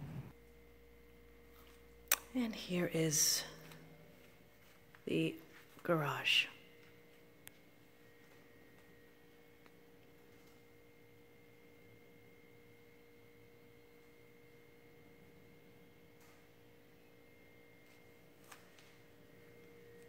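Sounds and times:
faint steady hum: 0.0s - 20.0s.

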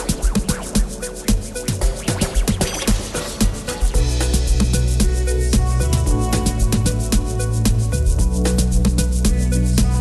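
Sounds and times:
music with deep bass beat: 0.0s - 10.0s.

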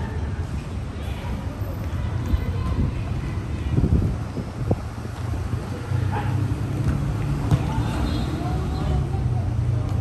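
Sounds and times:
road traffic rumble: 0.0s - 10.0s
wind on microphone: 2.3s - 5.8s
ball kicked thuds: 6.8s - 7.8s.

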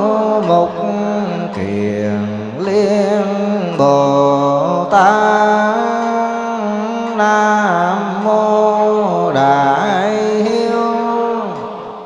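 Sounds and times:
lower chanting voice: 0.0s - 12.0s
monks chanting into a microphone: 0.0s - 12.0s.

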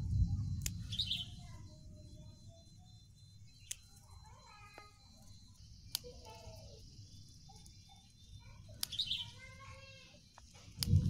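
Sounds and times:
low rumble: 0.0s - 2.2s
small birds chirping: 0.0s - 11.0s.

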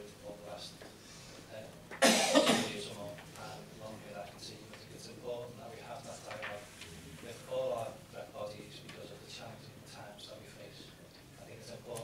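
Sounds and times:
person coughing: 2.0s - 2.8s.

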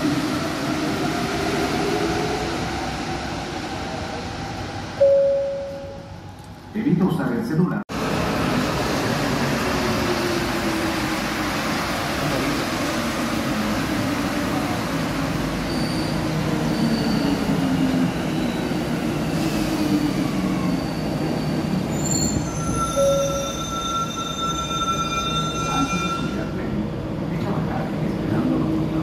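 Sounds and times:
train brakes squealing: 15.5s - 26.6s.

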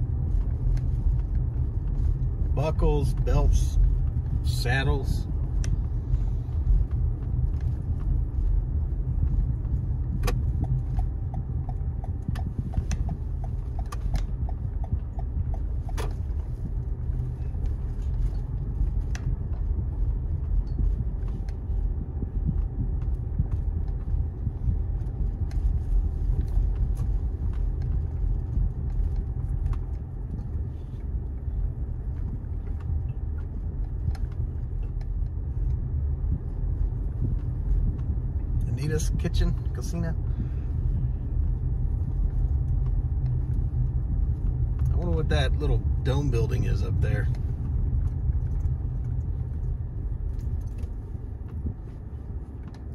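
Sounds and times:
car engine and road rumble: 0.0s - 52.9s.

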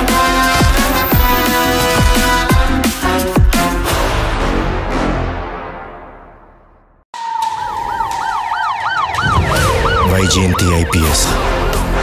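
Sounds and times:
police siren yelping: 7.2s - 11.9s.

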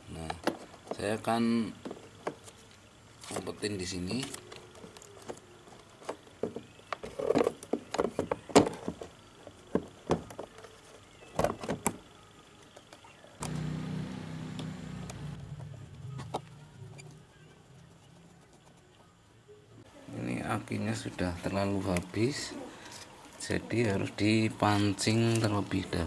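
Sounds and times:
steady low hum: 13.4s - 26.0s.

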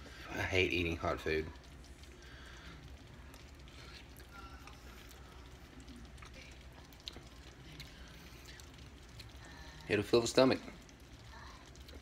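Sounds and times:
low room hum: 0.0s - 12.0s
person chewing food: 1.7s - 9.5s, 10.8s - 12.0s.

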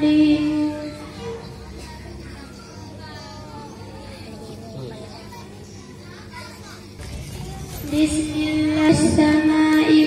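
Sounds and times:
girl chanting through loudspeaker: 0.0s - 4.0s, 7.8s - 10.0s
children chattering: 0.0s - 10.0s.

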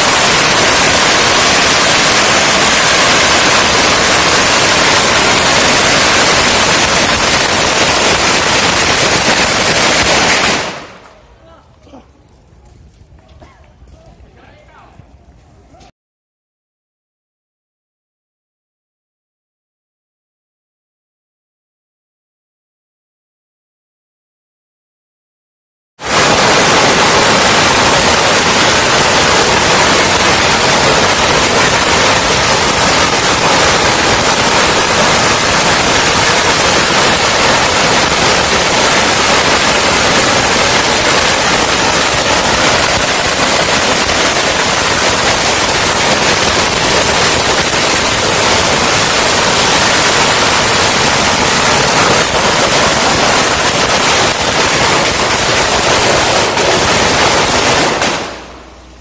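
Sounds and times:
firecrackers crackling: 0.0s - 14.9s, 26.0s - 59.0s.

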